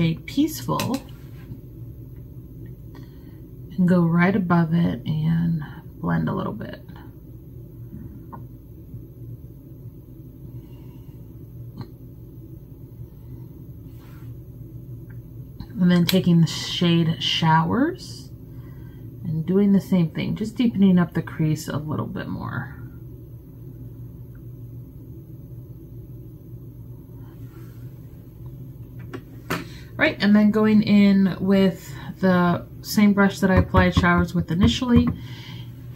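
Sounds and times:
low room hum: 0.0s - 35.9s.

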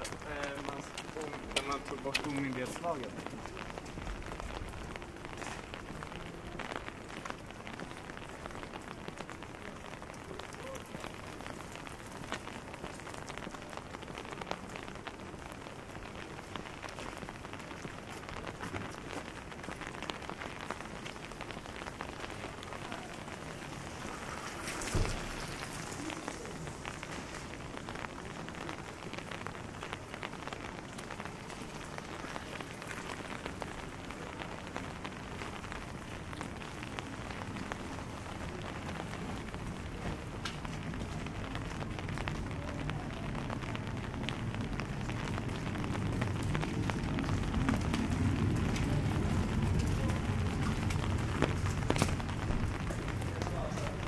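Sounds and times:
rain on wet pavement: 0.0s - 54.0s.

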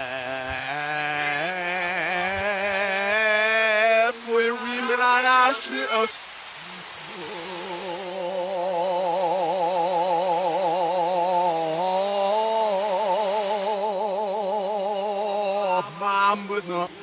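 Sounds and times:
reversed man's sung note: 0.0s - 17.0s.

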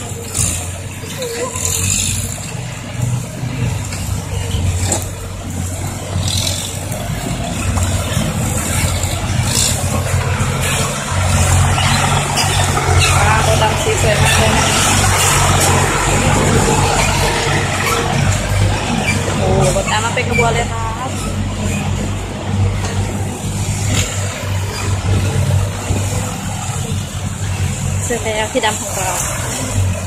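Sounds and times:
dump truck diesel engines driving by: 0.0s - 30.0s.

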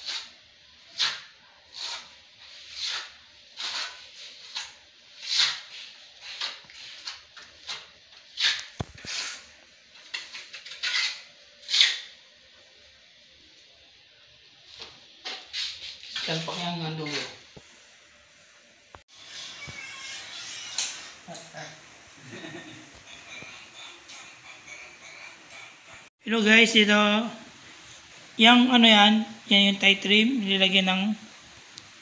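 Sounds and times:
trowel scraping mortar: 0.0s - 12.2s, 14.7s - 17.4s.

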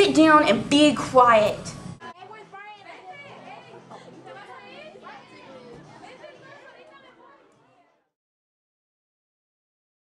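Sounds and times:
students chattering: 2.0s - 8.0s.

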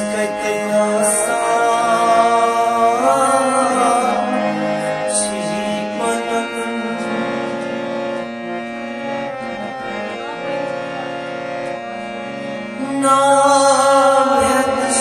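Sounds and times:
man singing: 0.0s - 7.6s, 12.7s - 15.0s
harmonium playing chords: 0.0s - 15.0s.

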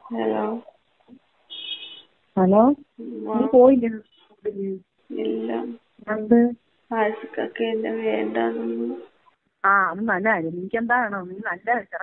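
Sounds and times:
person talking over a telephone: 2.6s - 9.1s.

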